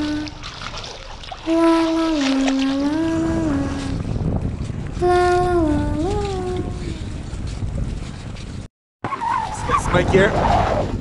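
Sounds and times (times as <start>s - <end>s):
girl singing: 0.0s - 0.4s, 1.4s - 4.1s, 5.0s - 7.3s
wind rumble on microphone: 0.0s - 8.7s, 9.4s - 11.0s.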